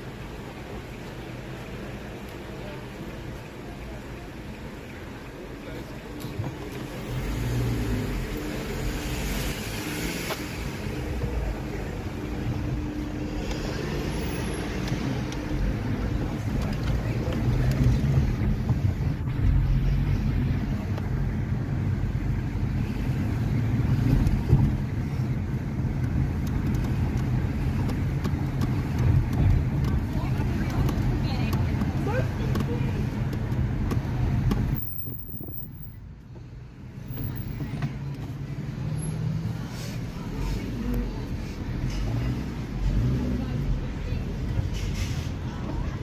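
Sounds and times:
car engine and tyre rumble: 0:00.0 - 0:46.0.

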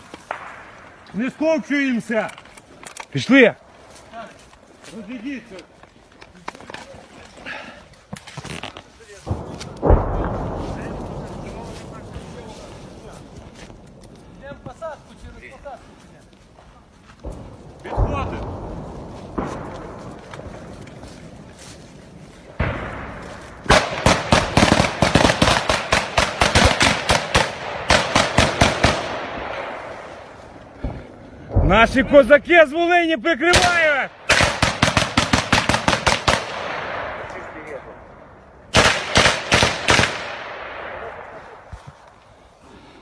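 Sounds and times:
gunshots echoing: 0:00.2 - 0:02.2, 0:09.2 - 0:13.3, 0:17.2 - 0:21.2, 0:22.4 - 0:32.8, 0:33.4 - 0:41.7
rapid continuous gunfire: 0:23.7 - 0:29.8, 0:33.5 - 0:37.2, 0:38.7 - 0:41.5.

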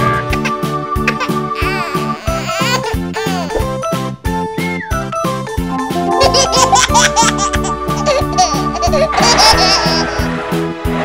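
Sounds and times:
cartoon baby giggling: 0:00.3 - 0:03.7, 0:05.8 - 0:10.3
children's music with steady beat: 0:05.2 - 0:10.0.

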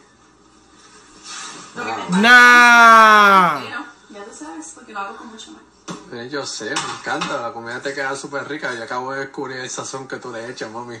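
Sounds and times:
pitched wavering voice: 0:02.1 - 0:03.7.

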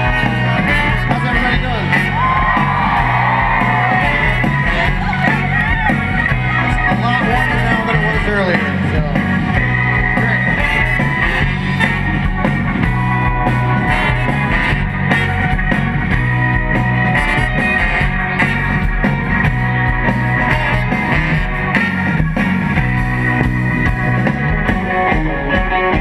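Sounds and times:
drum kit: 0:00.0 - 0:26.0
electric guitars: 0:00.0 - 0:26.0
rock band playing: 0:00.0 - 0:26.0.

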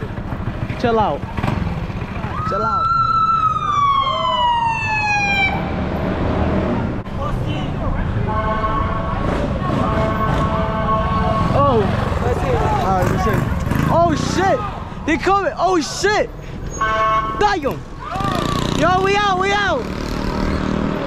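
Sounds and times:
steady traffic: 0:00.0 - 0:21.0
police siren: 0:02.2 - 0:05.7.

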